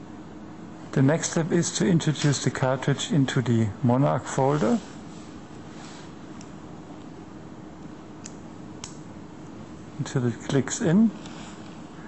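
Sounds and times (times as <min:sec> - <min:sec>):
low hum of room noise: 0:00.0 - 0:12.0.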